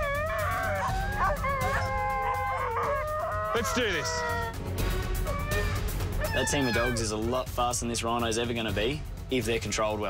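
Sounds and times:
sled dogs howling: 0:00.0 - 0:04.6, 0:05.2 - 0:07.1.

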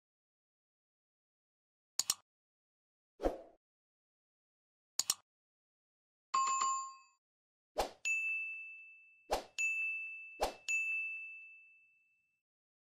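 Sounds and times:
bright notification dings: 0:08.1 - 0:12.2.

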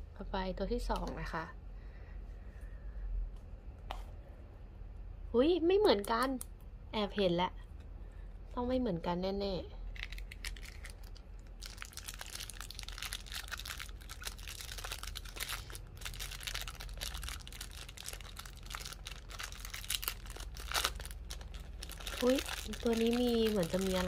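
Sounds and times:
plastic bag crinkling and tearing: 0:09.9 - 0:24.0.

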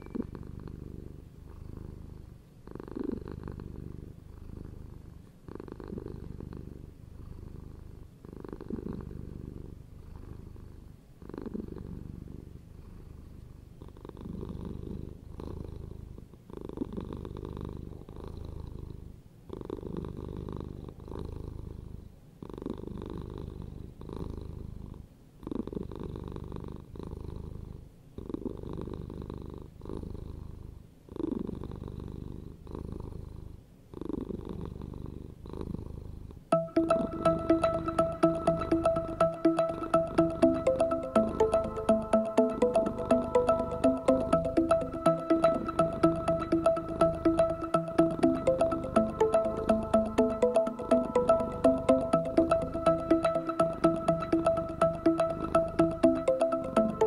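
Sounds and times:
cat purring: 0:00.0 - 0:36.5.

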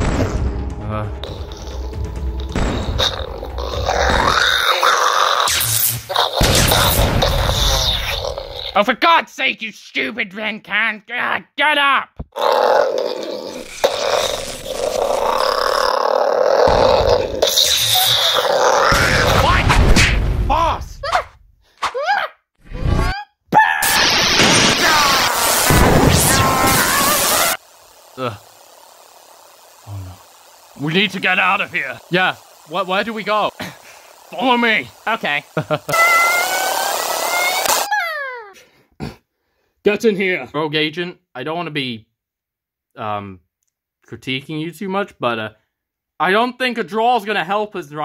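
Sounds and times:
electrical sparking crackle: 0:00.0 - 0:08.8, 0:12.9 - 0:20.3, 0:23.8 - 0:37.9
monster roar: 0:00.0 - 0:08.8, 0:12.3 - 0:19.9, 0:23.8 - 0:32.8, 0:33.4 - 0:37.9
falling power-down tone: 0:23.8 - 0:27.6, 0:35.6 - 0:37.9.

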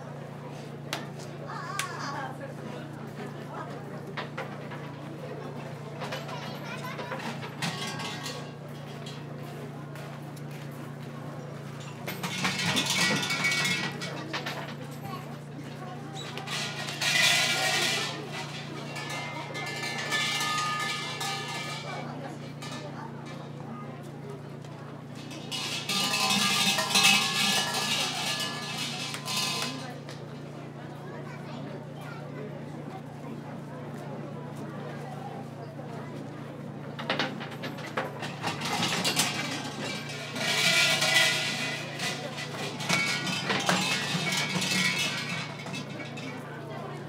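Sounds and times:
people talking: 0:00.0 - 0:47.0
shrine bell jangling: 0:16.4 - 0:22.9, 0:25.2 - 0:30.0, 0:38.2 - 0:46.4.

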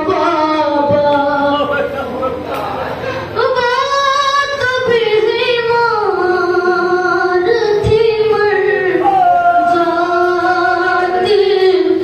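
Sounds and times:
boy chanting an elegy: 0:00.0 - 0:02.0.

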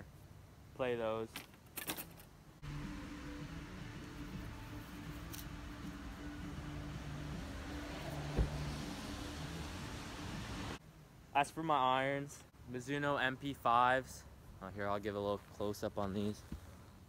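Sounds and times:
dull knock: 0:08.3 - 0:08.6.

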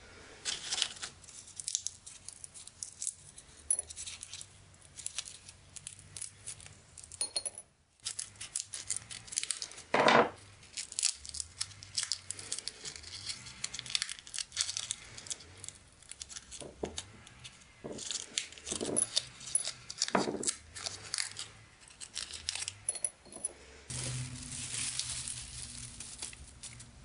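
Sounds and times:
dry seed pods crackling: 0:00.4 - 0:07.2, 0:08.0 - 0:22.9, 0:23.6 - 0:27.0.

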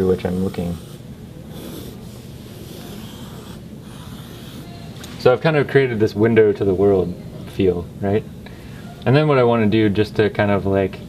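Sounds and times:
pencil scratching on paper: 0:00.0 - 0:04.8.

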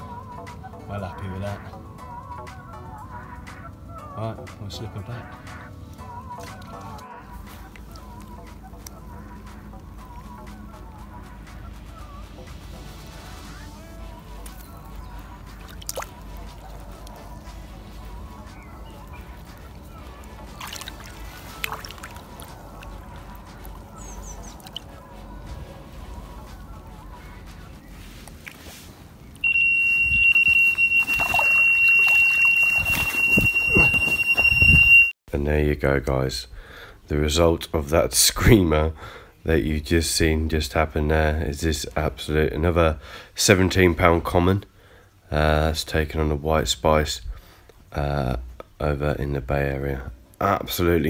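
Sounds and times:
water sloshing softly: 0:14.0 - 0:34.9
high-pitched bite alarm tone: 0:29.4 - 0:35.2.

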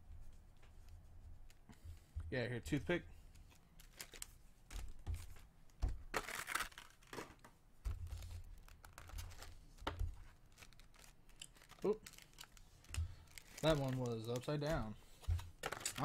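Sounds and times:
foil wrappers crinkling and tearing: 0:03.8 - 0:05.0, 0:06.1 - 0:07.3, 0:08.0 - 0:16.0.

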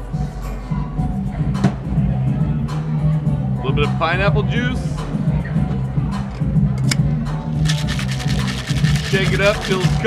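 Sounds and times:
background music with bass line: 0:00.0 - 0:10.0
ice rattling in cocktail shaker: 0:07.6 - 0:10.0.

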